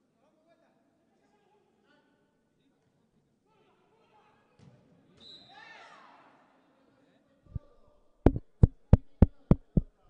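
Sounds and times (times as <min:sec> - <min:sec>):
football kicked: 0:08.3 - 0:10.0.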